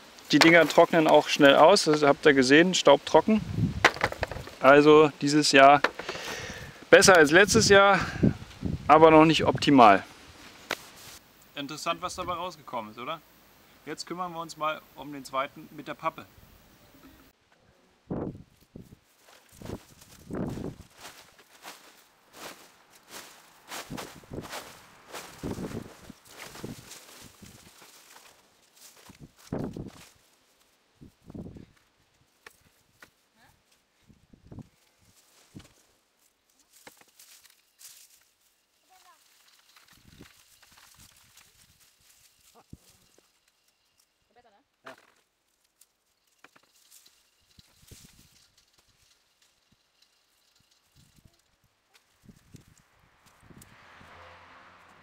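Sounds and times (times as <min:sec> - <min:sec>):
cardboard and dry stems rustling: 0:00.0 - 0:03.1, 0:09.8 - 0:11.3, 0:18.4 - 0:53.5
hands digging through dry soil: 0:18.6 - 0:30.8, 0:34.7 - 0:44.0.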